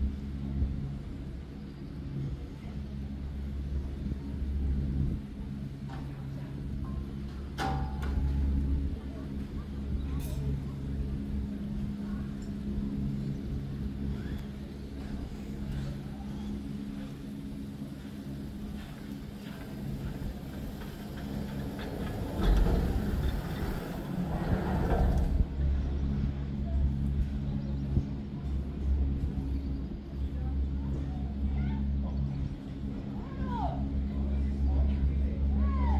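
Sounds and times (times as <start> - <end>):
lift machinery humming: 2.2 - 35.9.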